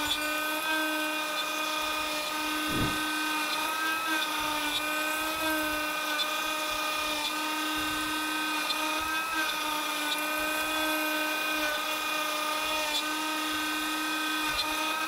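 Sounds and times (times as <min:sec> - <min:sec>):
bit cutting plywood: 0:00.0 - 0:15.0
router motor whine: 0:00.0 - 0:15.0.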